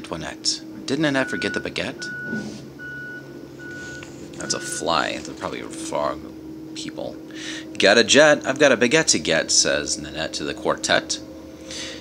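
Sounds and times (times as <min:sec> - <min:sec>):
electronic beeper: 0:01.1 - 0:05.9.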